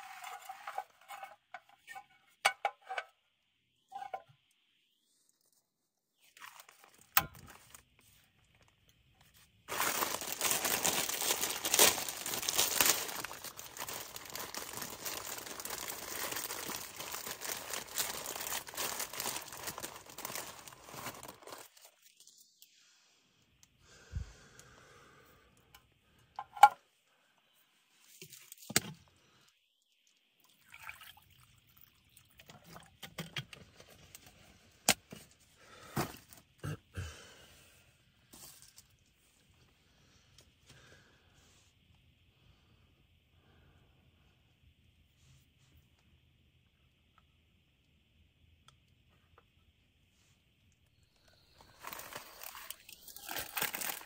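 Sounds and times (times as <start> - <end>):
plastic packet crinkling and tearing: 9.7 - 22.3, 51.3 - 54.0.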